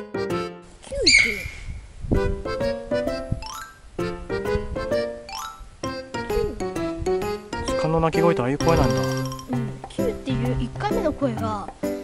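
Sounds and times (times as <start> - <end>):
background music: 0.0 - 0.7, 2.2 - 12.0
faint outdoor hiss: 0.0 - 12.0
deer whistling call: 1.0 - 1.7.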